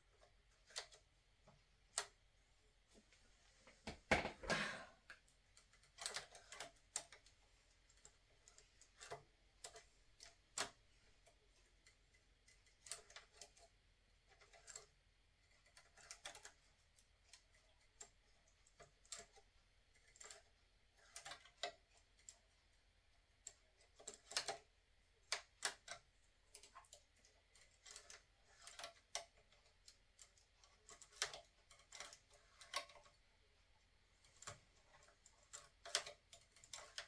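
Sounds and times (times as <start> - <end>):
knitting machine needles clicking: 0.0 - 2.3, 5.1 - 37.0.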